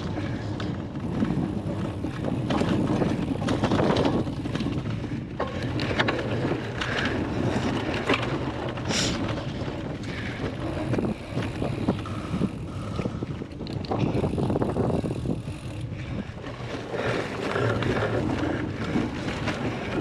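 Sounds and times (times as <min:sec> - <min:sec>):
bike knocks and rattles: 0:00.0 - 0:20.0
bike tyres rumbling on grass: 0:00.0 - 0:20.0
wind buffeting microphone: 0:00.0 - 0:20.0.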